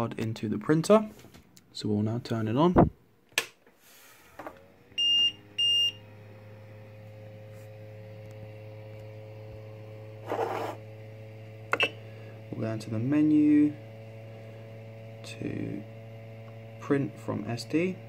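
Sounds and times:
printer low hum: 4.1s - 18.0s.

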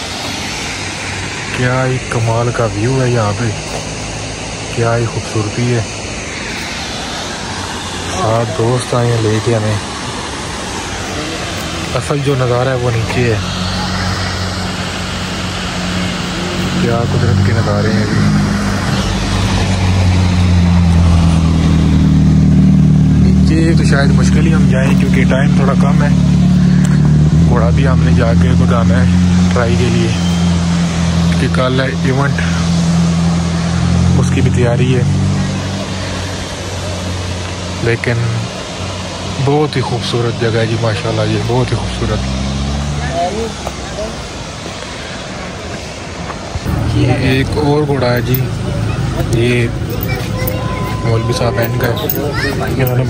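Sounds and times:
steady rushing hiss: 0.0s - 53.0s
vehicle engine hum: 0.0s - 53.0s
faint voices: 1.4s - 21.5s, 23.0s - 53.0s
vehicle engine idling: 46.6s - 53.0s.

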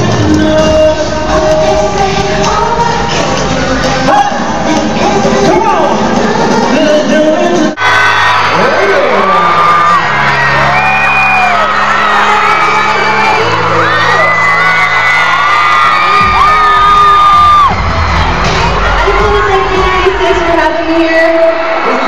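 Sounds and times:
fans screaming and whooping: 7.8s - 22.0s.

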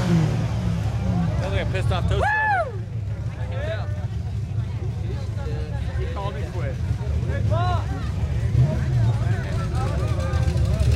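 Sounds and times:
engine low rumble: 0.0s - 10.9s
people's voices and shouts: 0.9s - 10.9s.

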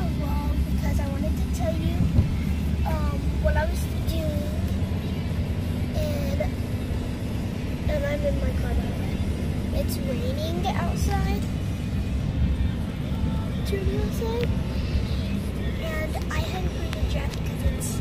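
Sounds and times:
child's voice: 0.0s - 2.2s, 2.8s - 4.8s, 5.9s - 6.6s, 7.9s - 11.5s, 13.6s - 14.6s, 15.7s - 18.0s
car engine rumble: 0.0s - 18.0s
road noise: 0.0s - 18.0s.

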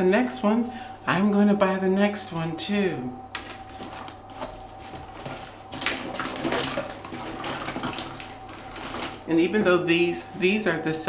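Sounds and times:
small objects rustling and clattering: 3.4s - 10.3s.

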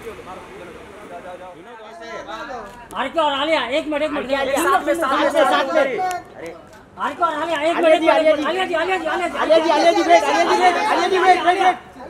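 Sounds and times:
men shouting: 7.7s - 12.0s.

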